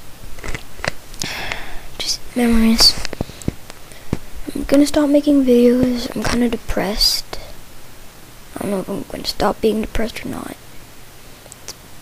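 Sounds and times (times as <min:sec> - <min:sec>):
person breathing in: 0:01.2 - 0:02.0
person speaking: 0:01.2 - 0:07.6, 0:08.5 - 0:10.6.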